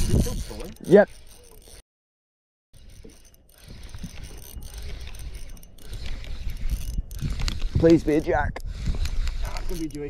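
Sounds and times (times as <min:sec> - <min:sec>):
fishing reel cranking and clicking: 0:00.0 - 0:01.8, 0:02.8 - 0:10.0.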